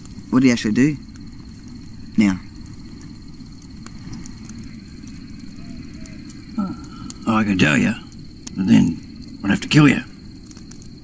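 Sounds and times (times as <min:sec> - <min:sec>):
high-pitched insect trill: 0:00.0 - 0:11.0
faint clicks: 0:01.0 - 0:08.6, 0:10.1 - 0:11.0.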